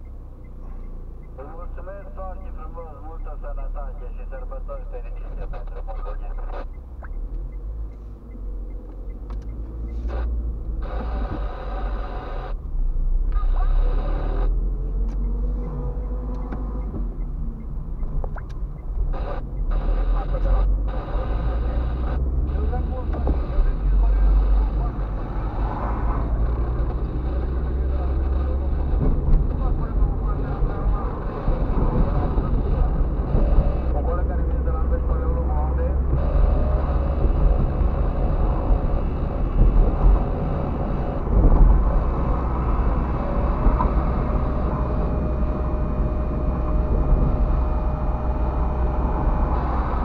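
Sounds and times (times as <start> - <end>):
car road and engine rumble: 0.0 - 50.0.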